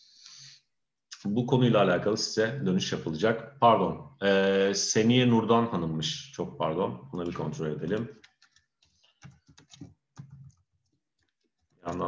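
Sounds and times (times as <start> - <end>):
computer keyboard typing: 7.3 - 12.0.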